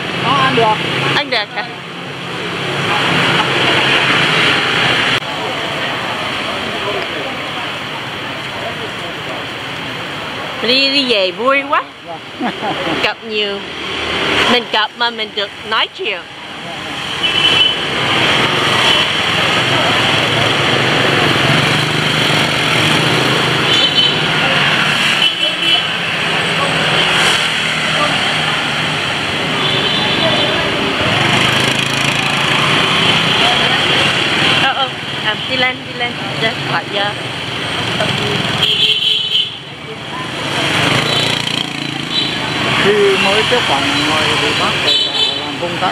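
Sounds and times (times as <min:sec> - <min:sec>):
people's voices: 0:00.0 - 0:38.9, 0:39.5 - 0:45.9
motorbikes and scooters passing: 0:00.0 - 0:45.9.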